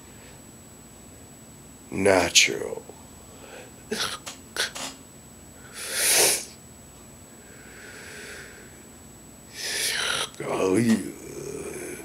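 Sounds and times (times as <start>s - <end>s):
forceful burst of breath: 5.7s - 6.6s, 7.4s - 8.7s.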